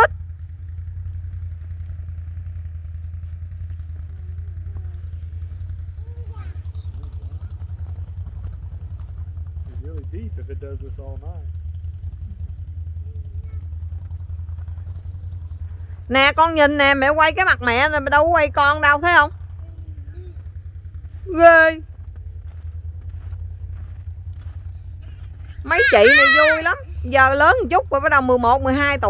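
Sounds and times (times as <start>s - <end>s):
faint voices: 25.0s - 29.0s.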